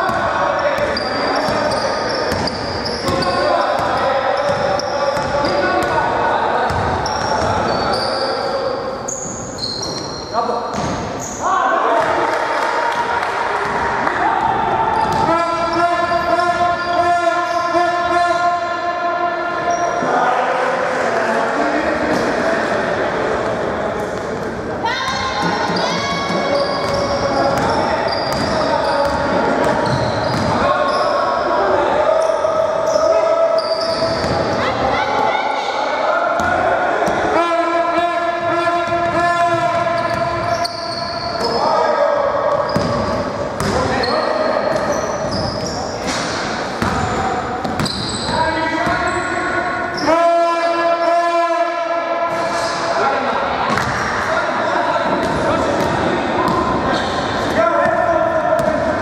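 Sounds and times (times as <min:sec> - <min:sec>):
voices echoing in hall: 0:00.0 - 0:59.0.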